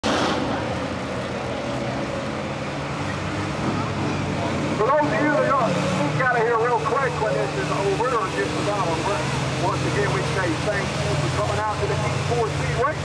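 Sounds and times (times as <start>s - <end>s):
race car engines droning: 0.0s - 13.0s
man speaking: 4.8s - 13.0s.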